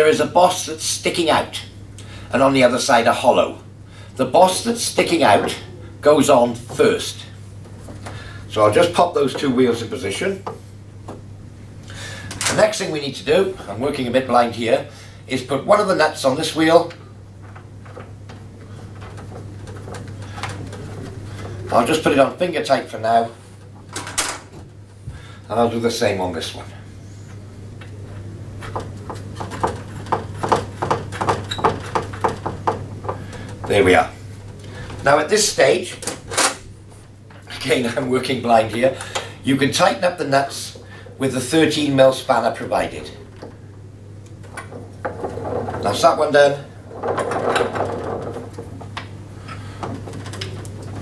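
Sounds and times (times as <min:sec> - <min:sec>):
steady low hum: 0:00.0 - 0:51.0.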